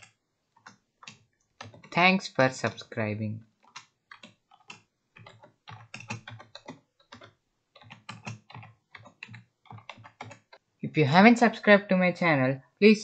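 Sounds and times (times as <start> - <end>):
typing on computer keyboard: 0.0 - 2.8, 3.6 - 10.6.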